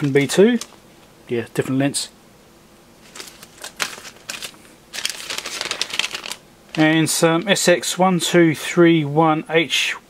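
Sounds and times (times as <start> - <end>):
plastic bags crinkling: 0.0 - 0.9, 3.0 - 7.6.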